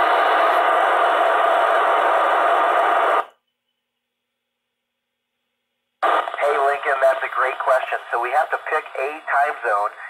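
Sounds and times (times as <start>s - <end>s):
radio receiver static hiss: 0.0s - 3.4s, 6.0s - 10.0s.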